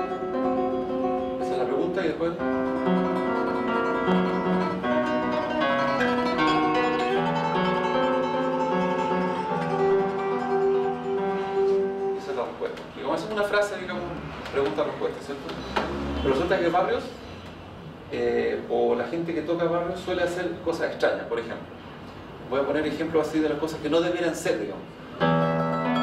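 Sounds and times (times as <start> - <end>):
classical guitar solo: 0.0 - 13.5, 25.1 - 26.0.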